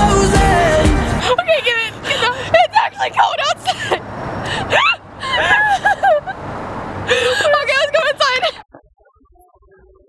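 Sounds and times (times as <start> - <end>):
low hum of vehicles: 0.0 - 8.6
women laughing and exclaiming: 1.2 - 4.0, 4.6 - 6.4, 7.1 - 8.6.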